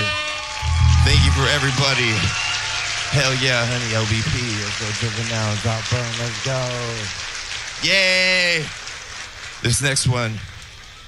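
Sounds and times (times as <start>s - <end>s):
loud held call: 0.0s - 4.8s
audience applause: 0.0s - 11.0s
man's voice over pa: 0.7s - 2.3s.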